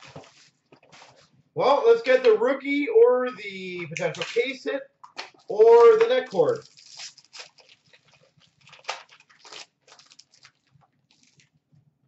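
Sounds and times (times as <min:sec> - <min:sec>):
foil wrapper tearing and crinkling: 0:05.4 - 0:11.7.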